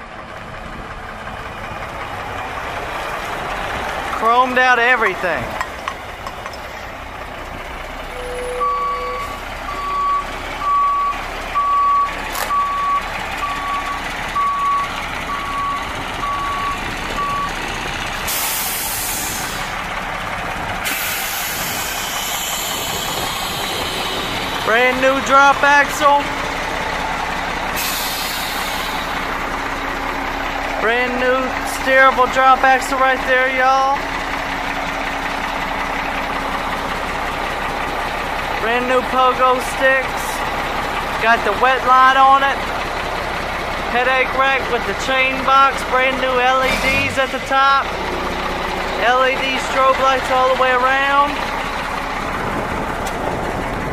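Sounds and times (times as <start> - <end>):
diesel engine running: 0.0 - 53.9
truck backup alarm beeping: 7.9 - 20.1, 20.8 - 37.3.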